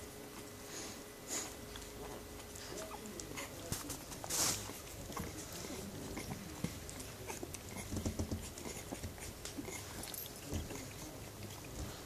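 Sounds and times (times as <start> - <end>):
puppies suckling wet clicks: 1.5 - 12.0.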